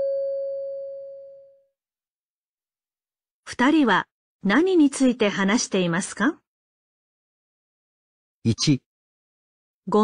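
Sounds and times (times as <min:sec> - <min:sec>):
clear chime tone: 0:00.0 - 0:01.6.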